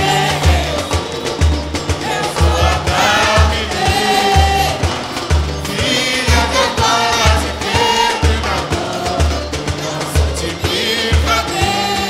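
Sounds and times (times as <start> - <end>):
bass drum beat: 0.0 - 12.0
voices singing together: 0.0 - 12.0.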